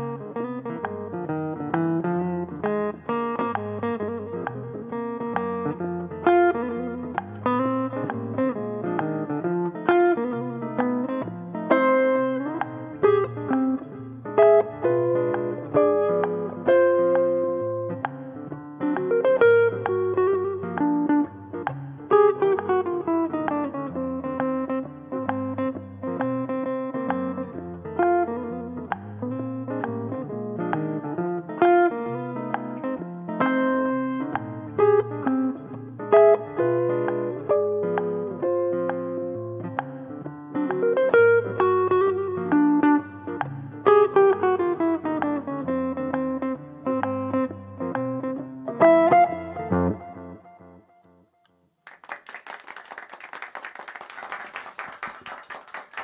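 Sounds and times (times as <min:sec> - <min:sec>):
jazz electric guitar: 0:00.0 - 0:51.2.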